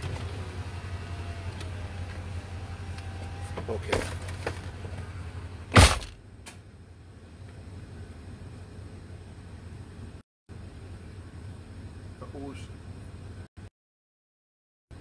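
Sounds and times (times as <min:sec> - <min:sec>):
loud thump: 0:05.7 - 0:06.2.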